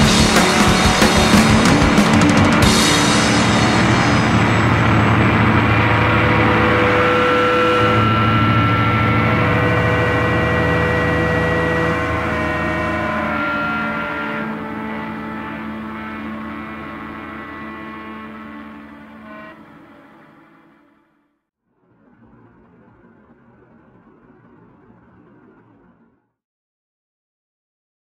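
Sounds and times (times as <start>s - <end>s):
amplifier feedback drone: 0.0s - 21.2s.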